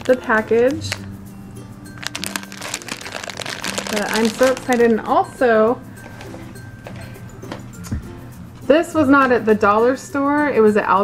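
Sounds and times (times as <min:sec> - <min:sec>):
plastic package crinkling: 0:00.0 - 0:01.1, 0:02.0 - 0:05.1
quiet background music: 0:00.0 - 0:11.0.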